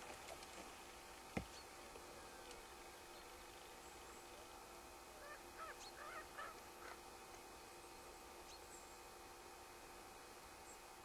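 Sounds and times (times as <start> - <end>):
short animal calls: 5.2 - 7.0.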